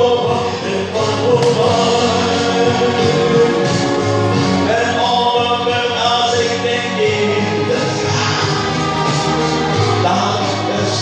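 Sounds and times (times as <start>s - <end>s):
recorded backing track: 0.0s - 11.0s
voices singing pop ballad: 0.0s - 11.0s.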